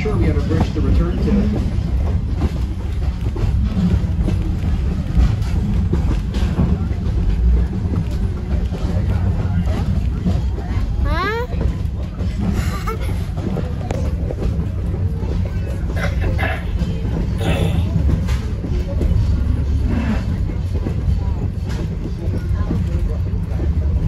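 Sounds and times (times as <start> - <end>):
train coach rumbling on track: 0.0 - 24.0.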